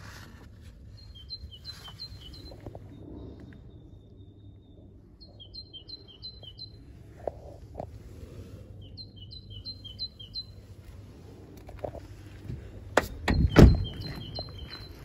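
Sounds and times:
songbird singing: 0:00.7 - 0:07.9, 0:08.6 - 0:15.0.

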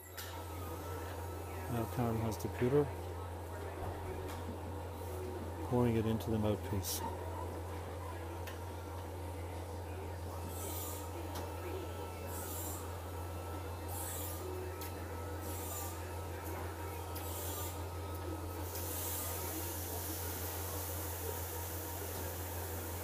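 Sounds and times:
low hum of workshop equipment: 0:00.0 - 0:23.0.

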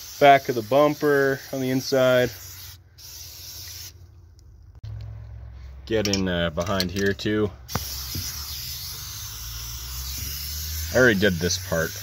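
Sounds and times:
aerosol can spraying: 0:00.0 - 0:03.9, 0:07.7 - 0:12.0.

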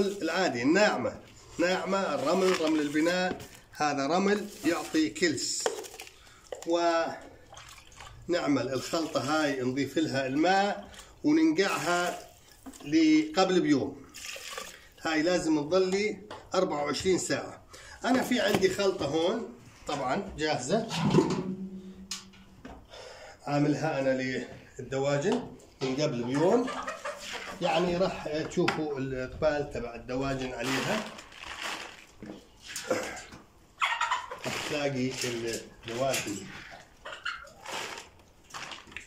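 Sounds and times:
animal calls and cries: 0:33.8 - 0:34.5, 0:37.0 - 0:37.7.

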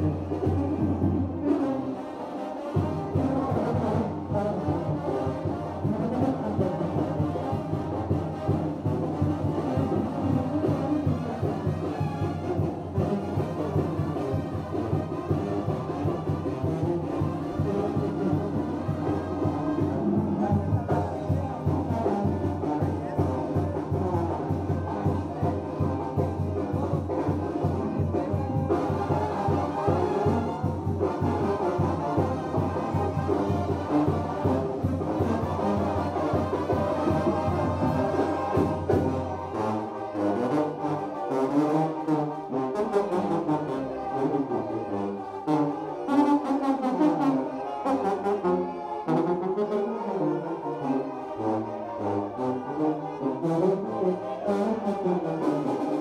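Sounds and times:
brass band playing dance music: 0:00.0 - 0:56.0.

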